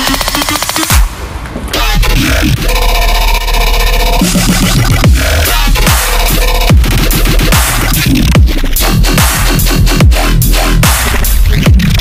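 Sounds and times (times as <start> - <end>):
electronic music with heavy bass: 0.0 - 12.0.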